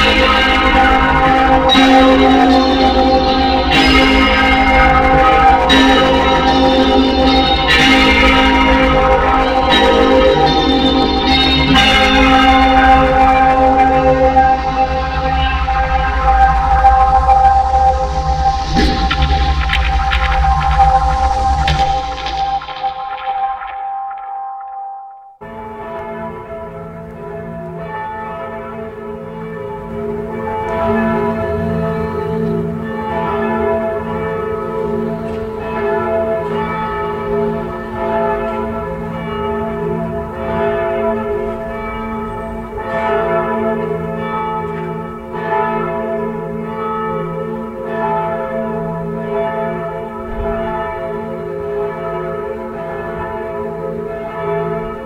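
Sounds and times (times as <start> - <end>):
bells pealing: 0.0 - 19.7.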